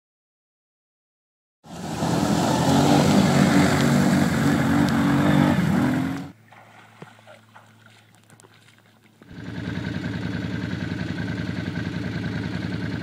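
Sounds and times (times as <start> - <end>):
engine running at high revs: 1.7 - 6.4, 9.2 - 13.0.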